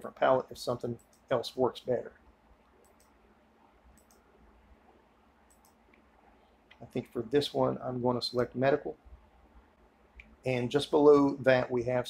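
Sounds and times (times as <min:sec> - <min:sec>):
computer mouse clicks: 0:01.0 - 0:01.3, 0:02.7 - 0:03.2, 0:03.9 - 0:04.3, 0:05.5 - 0:06.1.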